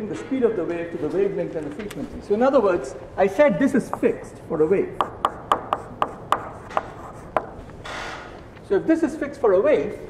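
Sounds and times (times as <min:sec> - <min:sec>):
chalk tapping and scratching: 0:04.8 - 0:08.4.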